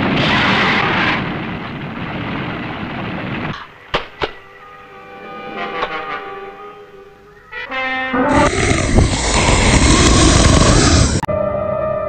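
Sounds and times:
sharp cracks: 0:00.0 - 0:04.4.

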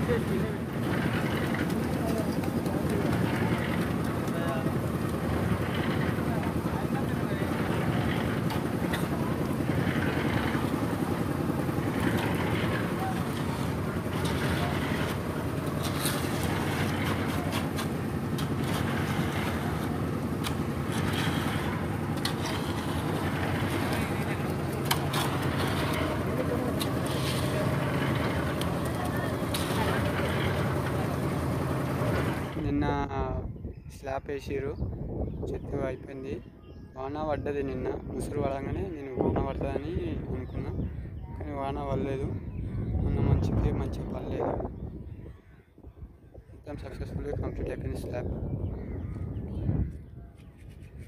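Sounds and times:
construction machine engine: 0:00.0 - 0:32.8
people's voices: 0:00.0 - 0:33.4.

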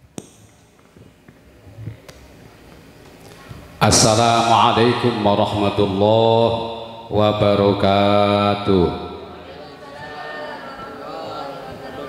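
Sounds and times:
man chanting through a microphone: 0:03.8 - 0:09.6.

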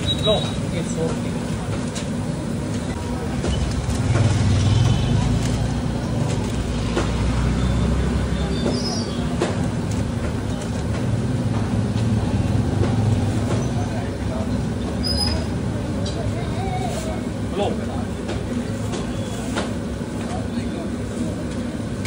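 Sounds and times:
low street rumble: 0:00.0 - 0:22.0.

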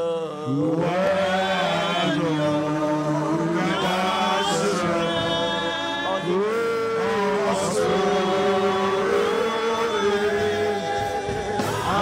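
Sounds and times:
congregation singing: 0:00.0 - 0:12.0.

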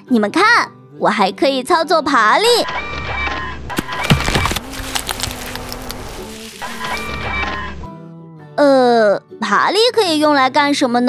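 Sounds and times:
sharp crack: 0:03.7 - 0:07.2.

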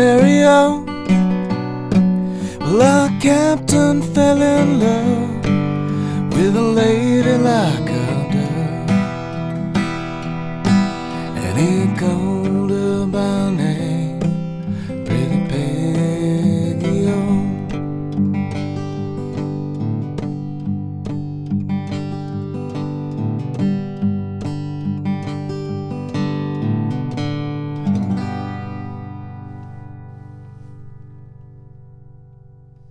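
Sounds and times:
acoustic guitar fingerpicked: 0:00.0 - 0:32.9.

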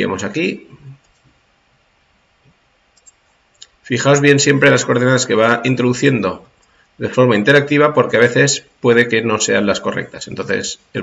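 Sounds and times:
man speaking: 0:00.0 - 0:01.0, 0:03.8 - 0:11.0
computer mouse clicks: 0:02.4 - 0:03.8.

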